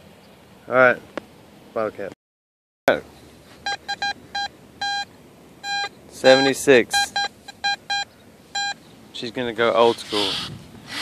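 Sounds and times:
metal detector beeps: 3.6 - 8.8.

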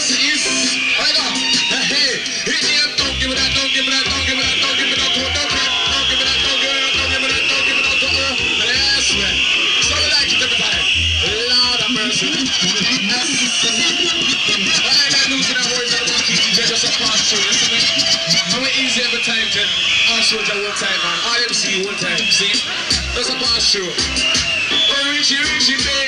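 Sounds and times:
loud reggae music: 0.0 - 26.0
deep pulsing bass line: 2.7 - 14.6, 22.9 - 24.4.

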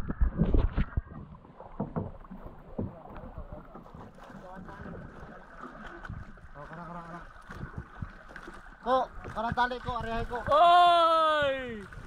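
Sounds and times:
water sloshing around canoe: 0.2 - 12.0
short knocks on canoe: 0.5 - 6.8, 7.4 - 10.6.

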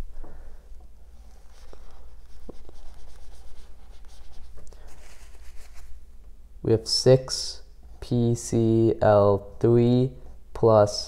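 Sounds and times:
marker writing on a whiteboard: 1.4 - 5.9.

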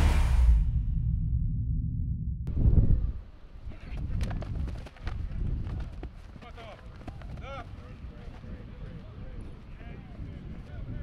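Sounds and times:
low electronic rumble: 0.0 - 3.3
outdoor field noise: 0.0 - 11.0.

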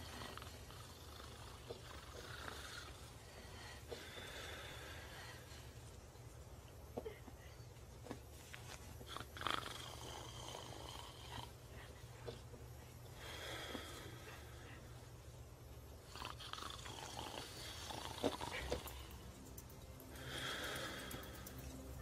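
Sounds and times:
faint human breathing: 0.0 - 6.2, 7.0 - 15.4, 16.1 - 22.0
low steady hum: 0.0 - 22.0.

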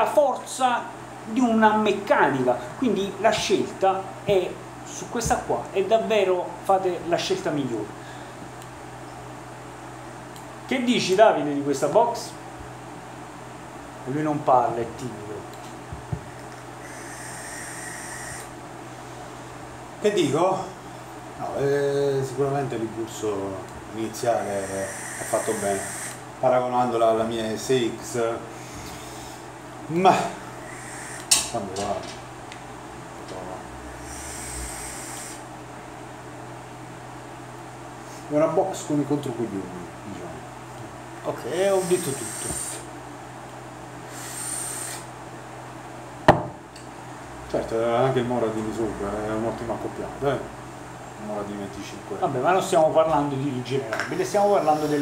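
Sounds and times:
vape drag hiss and whistle: 16.8 - 18.5, 24.4 - 26.2, 30.7 - 31.4, 34.0 - 35.4, 41.8 - 42.9, 44.1 - 45.1, 54.7 - 55.0
sharp knock: 46.3 - 46.6.

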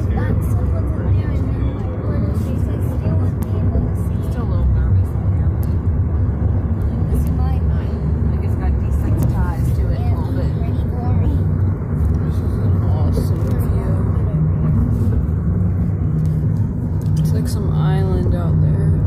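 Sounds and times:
car road and engine rumble: 0.0 - 19.0
faint voices talking: 0.0 - 19.0.

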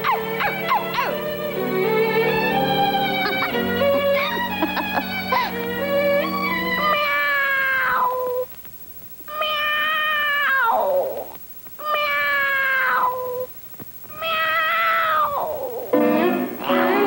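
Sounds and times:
cartoon animal meowing cries: 6.2 - 8.4, 9.3 - 13.5.

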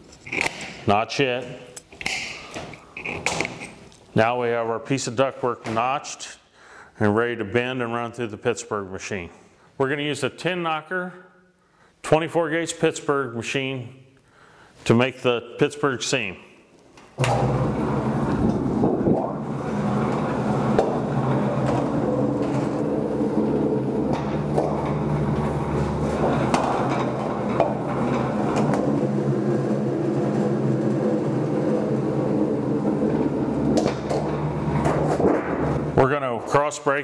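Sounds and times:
sheet metal machine humming: 17.2 - 36.1.

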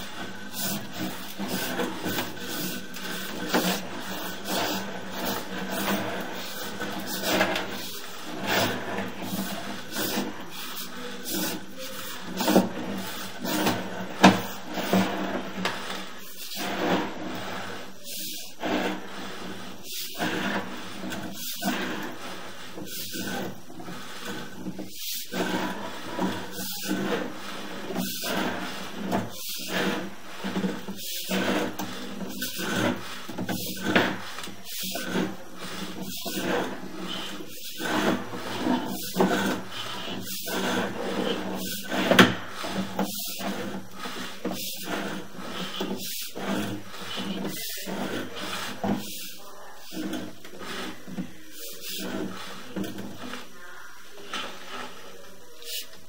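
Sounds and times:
steady low hum: 0.0 - 51.3
cable scraping inside pipe: 0.0 - 56.0.

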